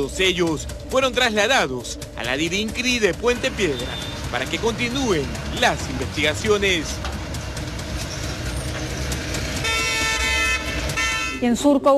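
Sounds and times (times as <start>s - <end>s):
street traffic rumble: 0.0s - 11.9s
car horn steady note: 2.7s - 7.0s, 9.3s - 11.7s.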